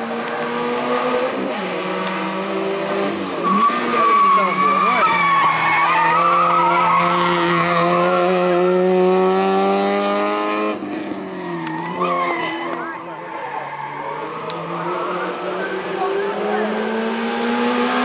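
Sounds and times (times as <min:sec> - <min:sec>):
race car engine at full throttle: 0:00.0 - 0:18.0
tyres squealing: 0:03.3 - 0:08.2, 0:11.4 - 0:16.8.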